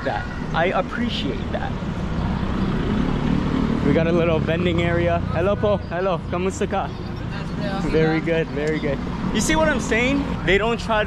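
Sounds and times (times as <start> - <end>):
road traffic rumble: 0.0 - 11.0
motor vehicle running close by: 1.6 - 11.0.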